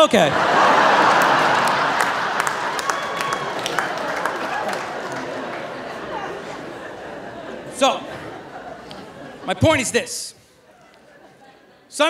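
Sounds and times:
audience applauding: 0.3 - 7.7.

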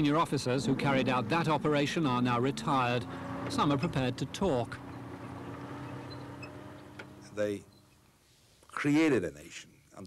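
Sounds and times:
vehicle engine running: 0.0 - 7.4.

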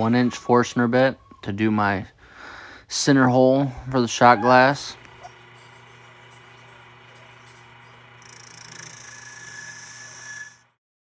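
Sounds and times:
turning tool cutting wood: 5.0 - 10.8
wood lathe motor hum: 5.0 - 10.8.

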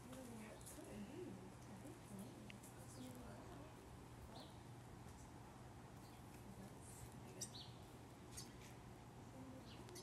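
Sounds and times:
distant people talking: 0.0 - 10.0
low steady hum: 0.0 - 10.0.

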